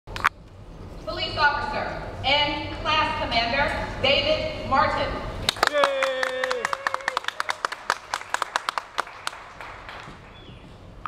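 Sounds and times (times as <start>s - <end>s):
audience clapping: 5.5s - 10.4s
person cheering: 5.6s - 7.6s.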